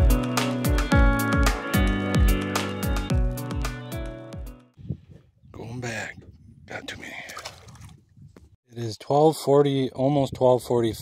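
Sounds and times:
fish splashing into water: 0:07.3 - 0:08.0.

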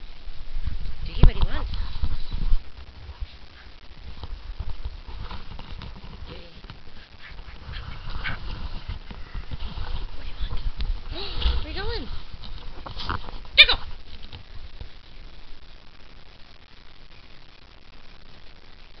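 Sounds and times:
rustling on a quilt: 0:01.4 - 0:15.1
dog barking: 0:13.6 - 0:13.9.

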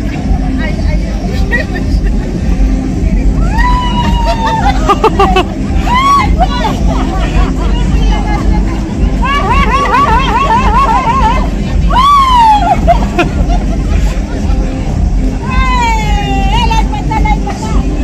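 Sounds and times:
background crowd chatter: 0:00.0 - 0:18.0
steady low rumble: 0:00.0 - 0:18.0
women chattering and calling out: 0:00.0 - 0:18.0.

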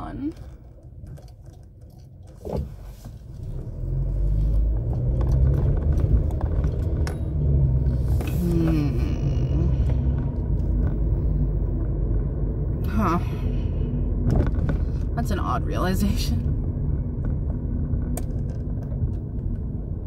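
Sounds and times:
car road noise rumble: 0:00.0 - 0:20.0.

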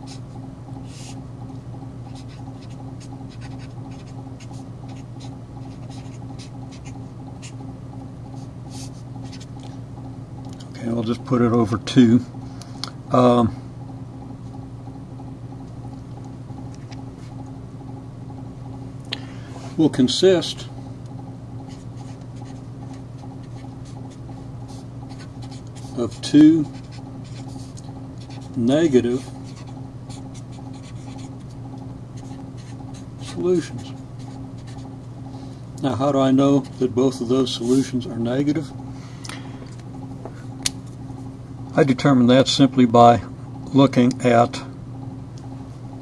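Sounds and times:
steady low hum: 0:00.0 - 0:46.0
marker scratching on paper: 0:00.8 - 0:01.2, 0:02.0 - 0:07.6, 0:08.3 - 0:09.6, 0:21.6 - 0:31.6, 0:32.2 - 0:35.0.

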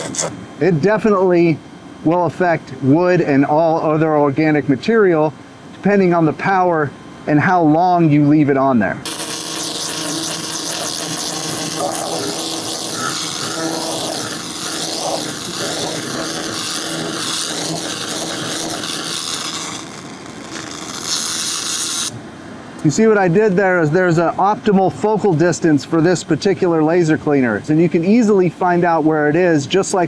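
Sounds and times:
laser cleaner hissing: 0:00.0 - 0:00.4, 0:09.0 - 0:22.2.

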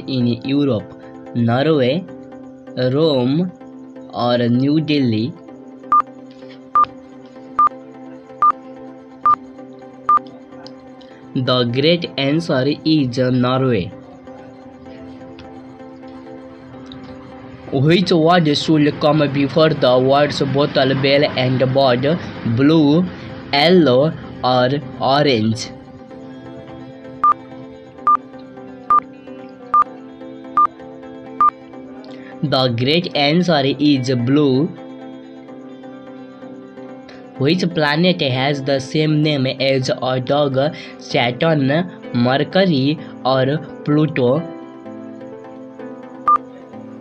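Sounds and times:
quiet background music: 0:00.0 - 0:47.0
countdown timer beeps: 0:05.9 - 0:06.1, 0:07.6 - 0:07.8, 0:08.4 - 0:08.6, 0:27.2 - 0:27.4, 0:28.0 - 0:29.1, 0:29.7 - 0:29.9, 0:46.2 - 0:46.5.

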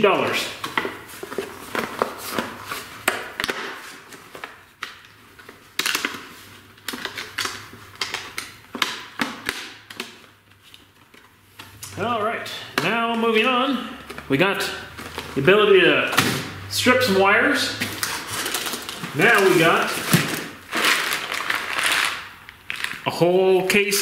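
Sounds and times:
person speaking: 0:00.0 - 0:00.6, 0:11.7 - 0:18.0, 0:19.0 - 0:20.4, 0:23.0 - 0:24.0
plastic packaging crackling: 0:00.2 - 0:12.1, 0:13.0 - 0:15.6, 0:17.8 - 0:24.0.

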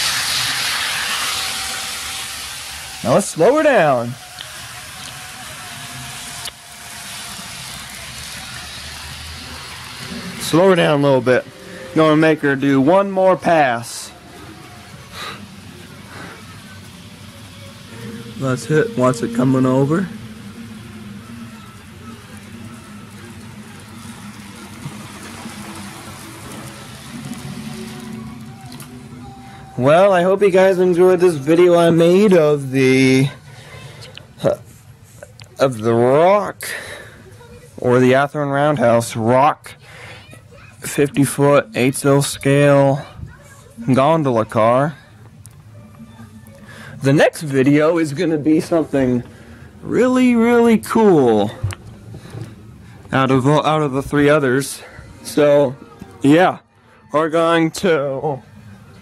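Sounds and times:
model train rushing past: 0:00.0 - 0:14.1, 0:15.5 - 0:28.5.

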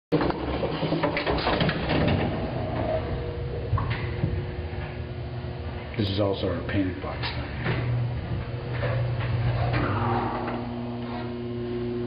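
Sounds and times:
elevator low rumble: 0:00.2 - 0:12.0.

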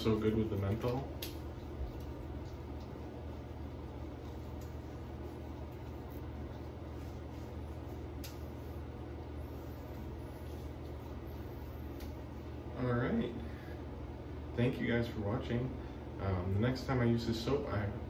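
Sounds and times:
low room hum: 0:00.0 - 0:18.0
faint soft clicks: 0:00.8 - 0:03.0, 0:08.2 - 0:08.5, 0:11.9 - 0:12.2.

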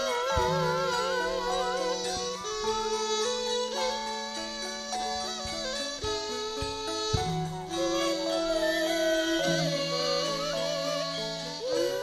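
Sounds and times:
band accompaniment: 0:00.0 - 0:12.0
woman singing ornamented melody: 0:07.8 - 0:12.0.

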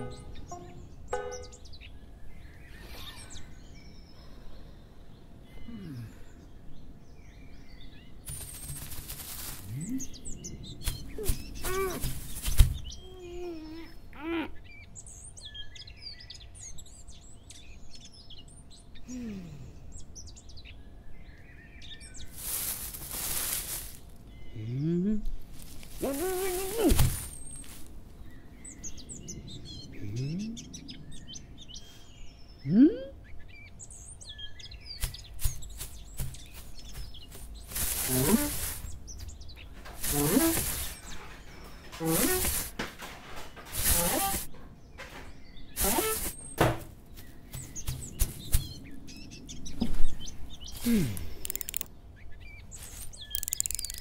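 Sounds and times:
birds chirping: 0:00.0 - 0:54.0
outdoor background hiss: 0:00.0 - 0:54.0.

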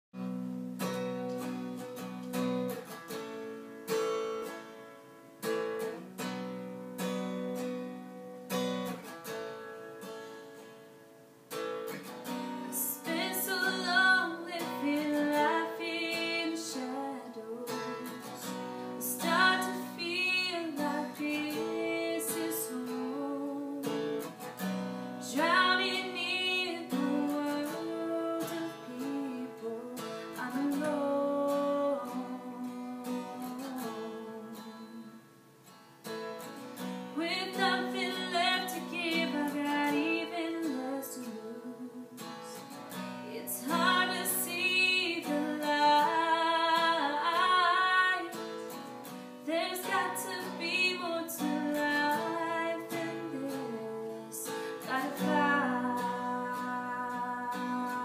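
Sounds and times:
acoustic guitar chords: 0:00.2 - 0:58.0
woman singing: 0:12.2 - 0:35.3, 0:37.1 - 0:58.0.

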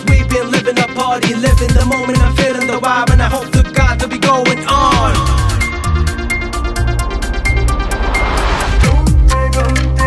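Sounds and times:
electronic pop beat: 0:00.0 - 0:10.0.

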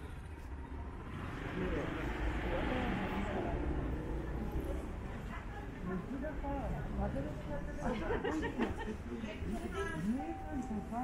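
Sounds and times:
traffic hum: 0:00.0 - 0:11.0
voices chatting: 0:01.4 - 0:11.0.

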